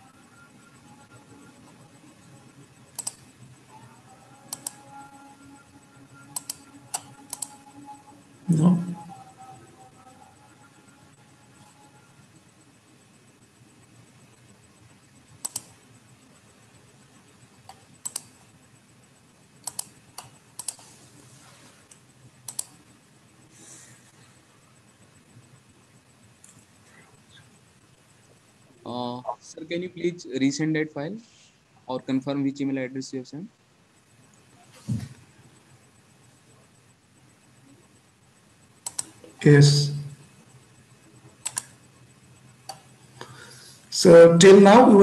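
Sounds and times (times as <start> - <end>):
faint steady hum: 0.0 - 45.0
computer mouse clicks: 2.8 - 3.4, 4.3 - 8.0, 15.2 - 15.8, 17.6 - 18.4, 19.6 - 21.0, 21.8 - 22.8, 26.4 - 27.6, 38.8 - 39.3, 41.4 - 41.9, 42.6 - 43.6
computer keyboard clicks: 2.9 - 3.2, 4.5 - 4.8, 6.3 - 7.6, 15.4 - 15.8, 17.7 - 18.4, 19.6 - 20.8, 22.5 - 22.7, 38.8 - 39.2, 41.4 - 41.8.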